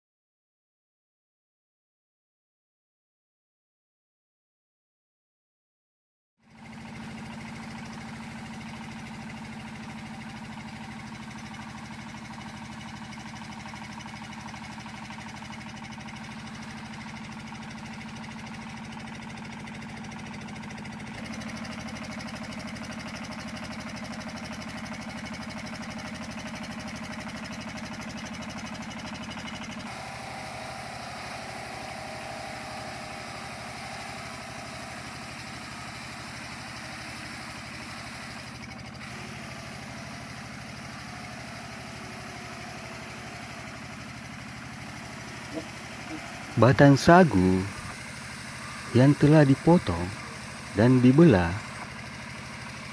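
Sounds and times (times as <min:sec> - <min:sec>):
engine driving grating machine: 0:06.5 - 0:52.9.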